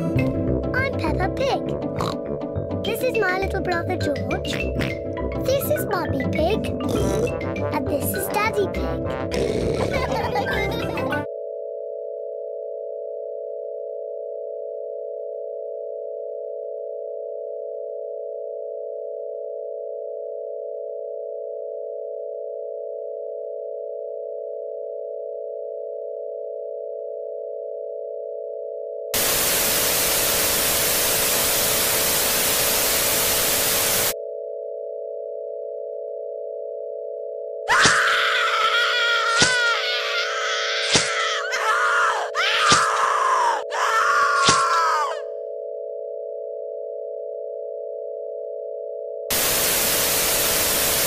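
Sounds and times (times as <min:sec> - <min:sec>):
cartoon music: 0:00.0 - 0:11.3, 0:37.7 - 0:45.4
loud white noise static: 0:29.2 - 0:34.2, 0:49.3 - 0:51.0
steady electronic tone: 0:29.2 - 0:34.2, 0:49.3 - 0:51.0.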